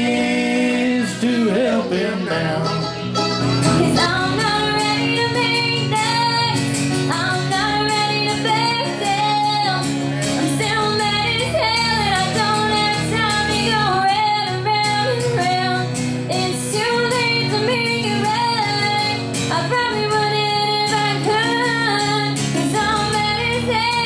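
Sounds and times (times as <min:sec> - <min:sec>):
strummed acoustic guitar: 0:00.0 - 0:24.0
woman singing folk melody: 0:03.6 - 0:24.0.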